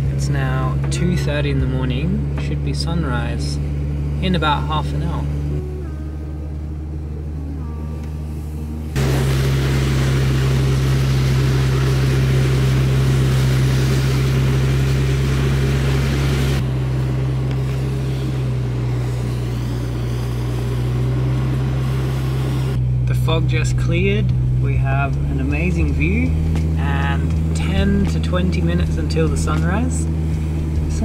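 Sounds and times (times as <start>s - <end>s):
engine drone: 0.0s - 31.0s.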